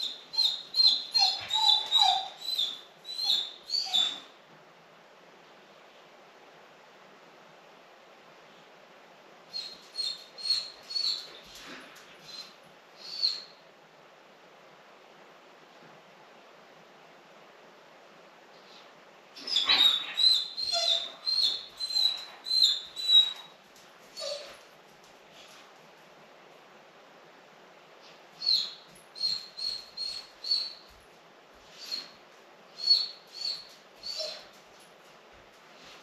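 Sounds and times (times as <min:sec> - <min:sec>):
dog whining: 0:00.0 - 0:04.3, 0:09.5 - 0:13.5, 0:19.4 - 0:24.6, 0:28.4 - 0:30.8, 0:32.8 - 0:34.6.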